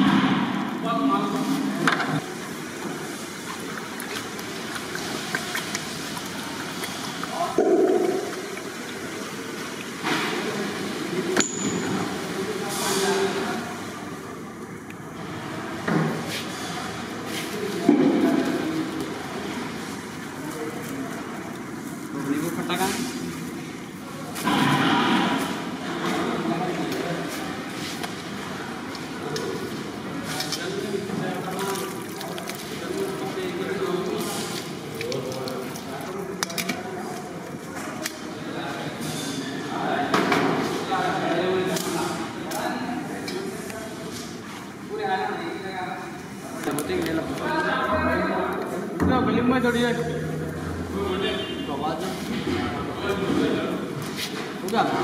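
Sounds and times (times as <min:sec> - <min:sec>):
steady background noise: 0:00.0 - 0:55.0.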